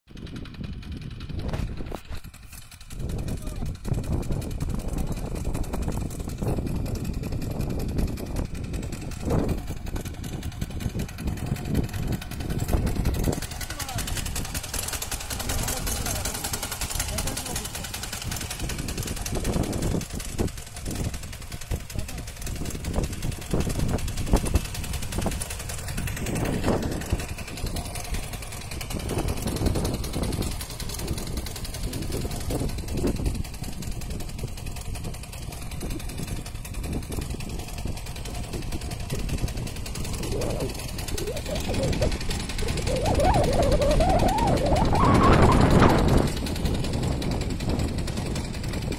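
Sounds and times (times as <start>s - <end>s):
small engine running: 0.1s - 48.9s
people talking: 3.2s - 3.7s, 13.7s - 14.1s, 15.4s - 18.0s, 21.9s - 22.4s, 40.2s - 46.1s.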